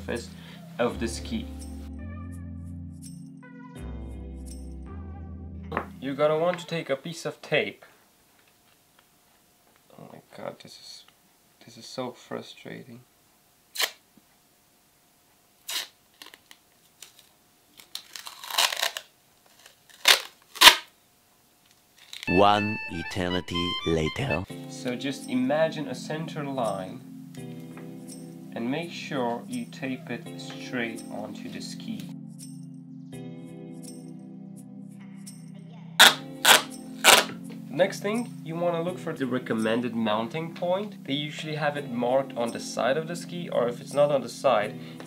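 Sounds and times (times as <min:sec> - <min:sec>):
background music: 0:00.0 - 0:06.8, 0:22.3 - 0:45.0
masking tape ripping: 0:13.8 - 0:14.0, 0:15.6 - 0:21.0, 0:22.0 - 0:22.3, 0:36.0 - 0:37.4.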